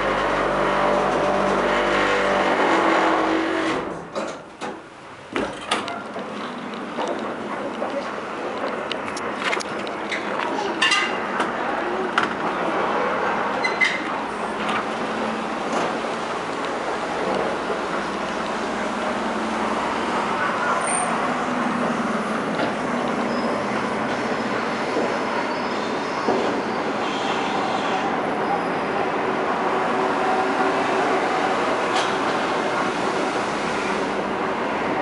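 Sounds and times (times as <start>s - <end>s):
elevator running rumble: 0.0s - 27.0s.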